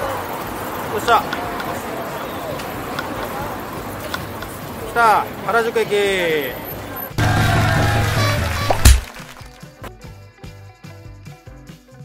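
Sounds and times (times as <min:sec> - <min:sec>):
chatter of passers-by: 0:00.0 - 0:08.6
traffic noise: 0:00.0 - 0:09.6
loud vocal cry: 0:07.2 - 0:08.8.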